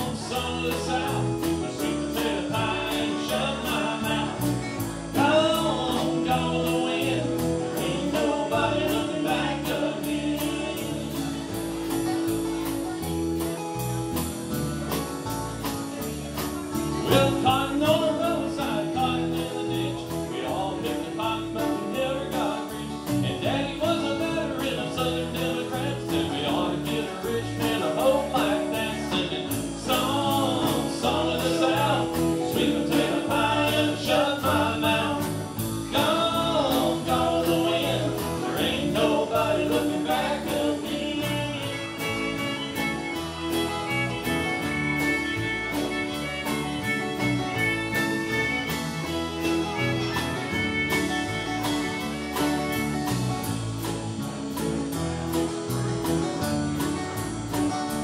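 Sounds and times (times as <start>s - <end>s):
man singing: 0.0s - 12.0s, 16.9s - 43.2s
country band playing: 0.0s - 58.0s.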